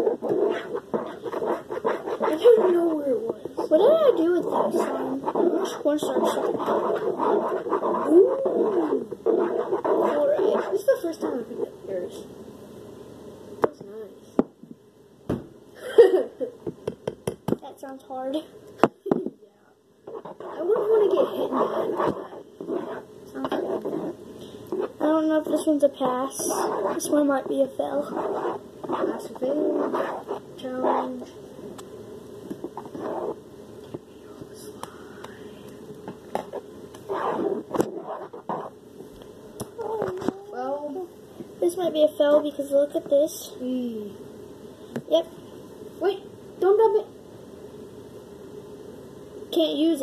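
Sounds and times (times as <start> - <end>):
utensil scraping slime in plastic bowl: 0.0 - 11.5, 20.2 - 24.2.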